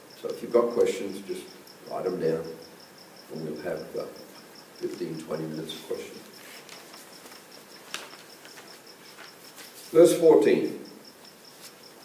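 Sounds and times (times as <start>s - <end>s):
cricket chirping: 0.0s - 12.0s.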